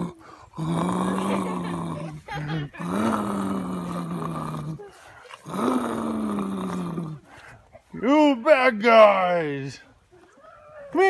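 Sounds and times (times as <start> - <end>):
child growling: 0.0 - 7.2.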